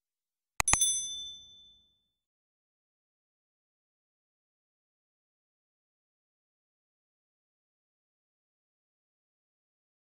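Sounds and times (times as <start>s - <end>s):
mouse clicks: 0.6s - 0.8s
bright bell ding: 0.6s - 1.9s.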